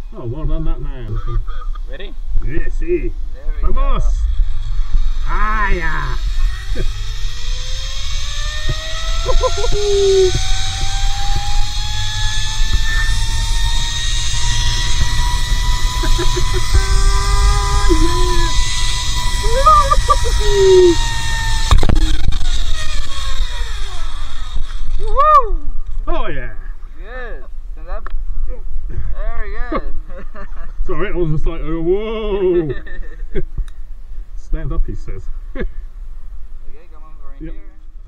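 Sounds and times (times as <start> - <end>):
low wind rumble: 0.0 - 32.8
zipline pulley whine: 3.2 - 26.1.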